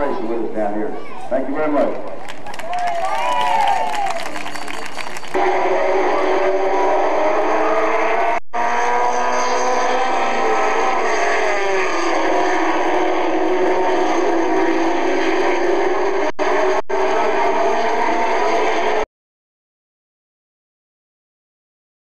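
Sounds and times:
race car engines at speed: 0.0 - 19.1.

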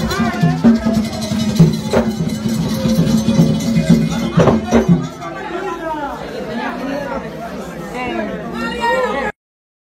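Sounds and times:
drum strikes: 0.0 - 5.3
crowd talking and calling out: 0.0 - 9.4.

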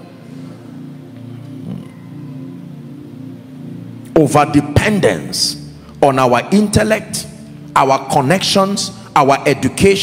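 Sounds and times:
soft keyboard pad chords: 0.0 - 10.0.

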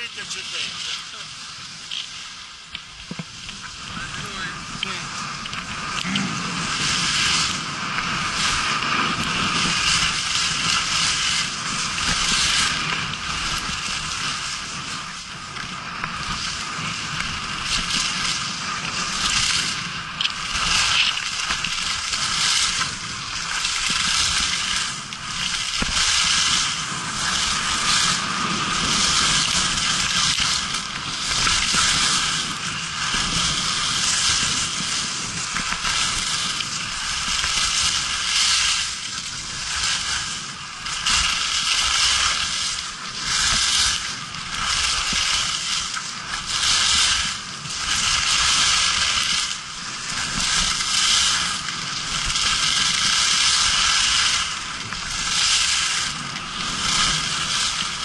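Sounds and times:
skis scraping over snow: 0.0 - 58.0.

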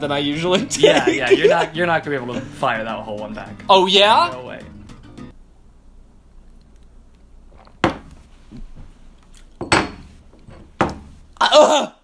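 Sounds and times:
knocks on wooden tabletop: 10.8 - 11.1.

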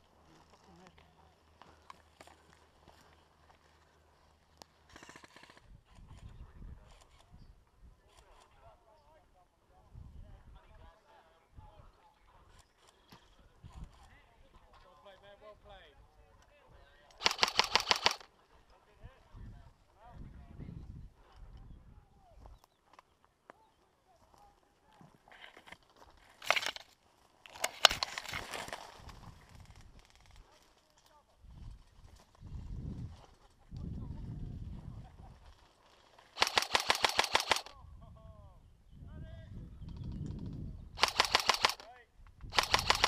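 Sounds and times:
airsoft gun firing bursts: 17.2 - 18.3, 26.4 - 26.8, 36.4 - 37.7, 41.0 - 41.9, 42.5 - 43.0.

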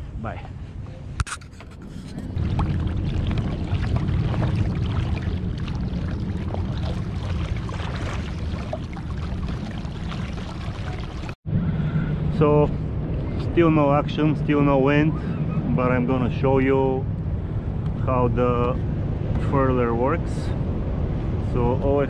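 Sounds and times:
steady low rumble: 0.0 - 22.0
water splashing against kayak hull: 2.0 - 11.4.

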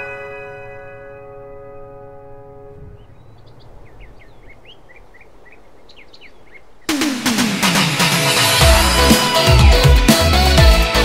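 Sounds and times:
birds chirping: 0.0 - 9.8
electronic dance track: 6.9 - 11.0.

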